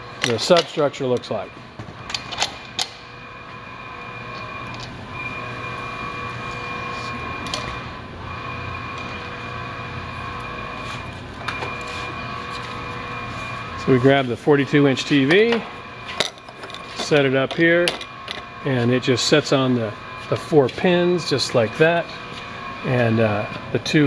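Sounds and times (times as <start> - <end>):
steady machine hum: 0.0 - 24.0.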